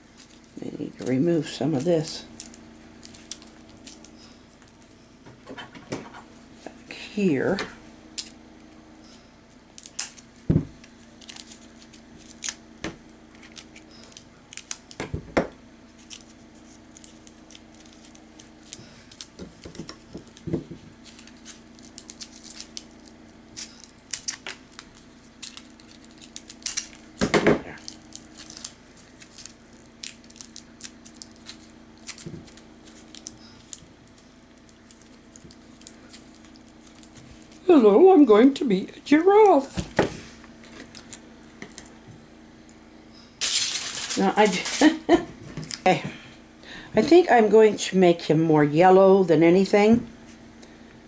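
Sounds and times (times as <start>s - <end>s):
aluminium foil crinkling: 0.0s - 4.9s, 9.1s - 15.1s, 15.9s - 42.0s, 43.4s - 45.8s.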